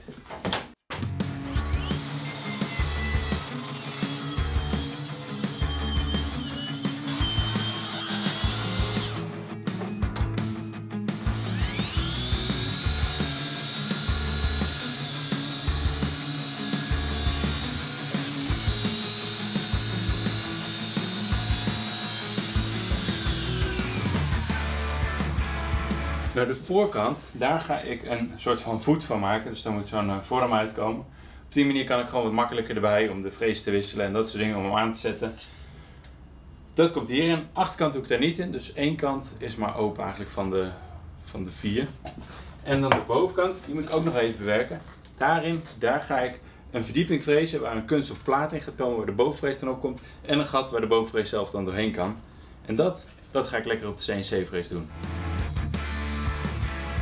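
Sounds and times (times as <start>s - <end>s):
miter saw whining and cutting: 1.5s - 9.3s, 11.3s - 25.6s
power saw wavering pitch: 1.5s - 9.3s, 11.3s - 25.6s
music with bass beat: 22.9s - 26.4s, 55.0s - 57.0s.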